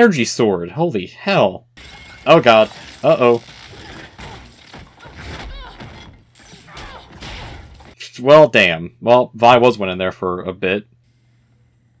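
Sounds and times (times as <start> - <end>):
crashing impact effects: 1.8 - 8.0.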